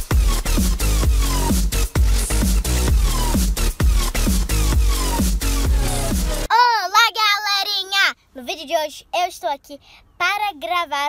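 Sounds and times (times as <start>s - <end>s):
electronic dance music: 0.0s - 6.5s.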